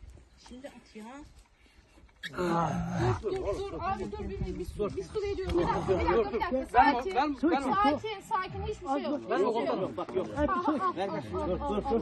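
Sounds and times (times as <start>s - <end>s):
people talking over one another: 2.2s - 12.0s.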